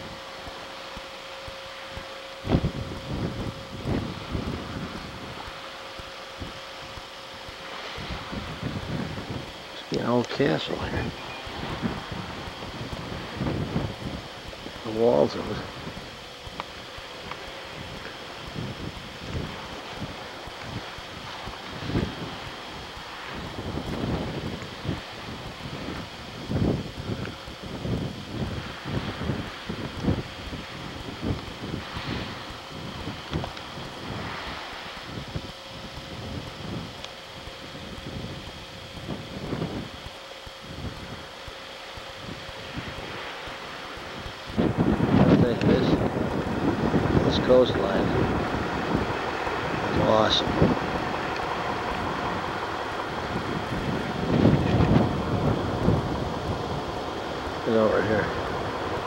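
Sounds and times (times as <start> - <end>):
wind buffeting microphone: 0.0 - 59.0
voices: 9.8 - 11.8, 45.1 - 59.0.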